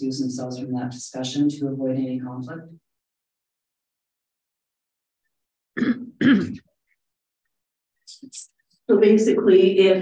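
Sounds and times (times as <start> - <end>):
person clearing their throat: 5.8 - 6.7.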